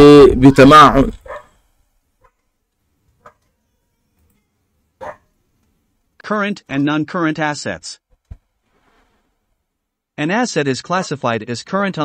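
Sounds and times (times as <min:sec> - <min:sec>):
man speaking: 0:00.0 - 0:01.2, 0:06.2 - 0:08.0, 0:10.2 - 0:12.0.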